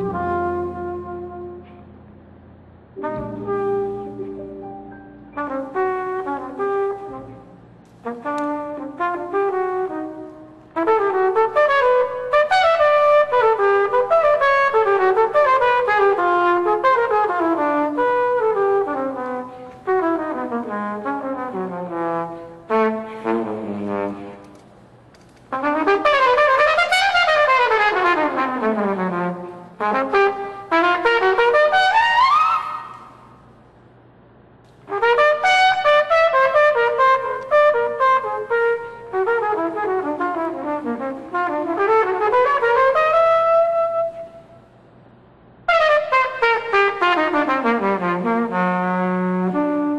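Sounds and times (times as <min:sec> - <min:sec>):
jazz trumpet solo: 0:00.0 - 0:01.8, 0:03.0 - 0:04.7, 0:05.4 - 0:24.6, 0:25.5 - 0:33.4, 0:34.8 - 0:44.5, 0:45.7 - 0:49.9.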